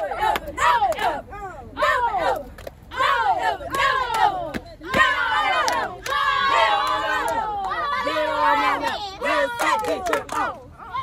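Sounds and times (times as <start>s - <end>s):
girls shouting a cheer chant: 0.0s - 11.0s
girls group yell: 1.8s - 9.9s.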